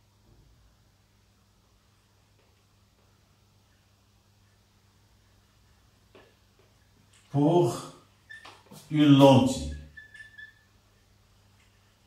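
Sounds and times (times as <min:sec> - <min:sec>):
faint low hum: 0:00.0 - 0:12.0
whiteboard marker squeaking: 0:08.2 - 0:11.0.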